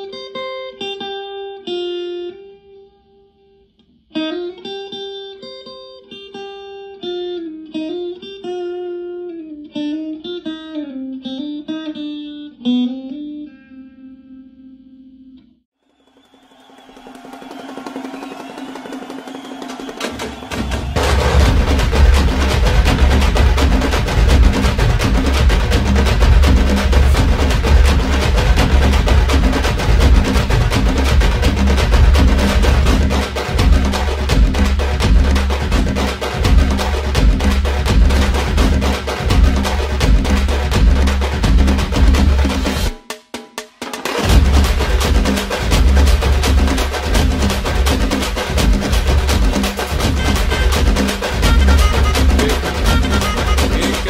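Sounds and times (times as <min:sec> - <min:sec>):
clean electric guitar melody: 0:04.1 - 0:15.6
dance music with heavy bass: 0:20.5 - 0:42.9, 0:44.3 - 0:54.0.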